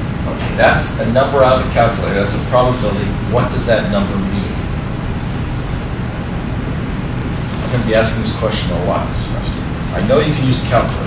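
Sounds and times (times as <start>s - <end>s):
low hum: 0.0s - 11.0s
even hiss: 0.2s - 5.8s, 7.1s - 11.0s.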